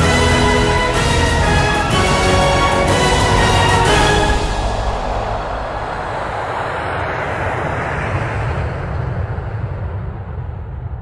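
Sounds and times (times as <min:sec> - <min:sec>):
jet engines in flight: 0:00.0 - 0:11.0.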